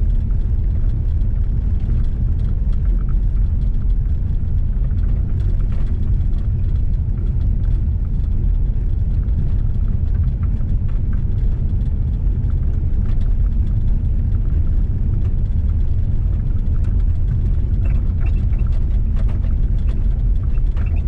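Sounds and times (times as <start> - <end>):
gravel ticking: 0.0 - 21.0
tyres and engine rumble: 0.0 - 21.0.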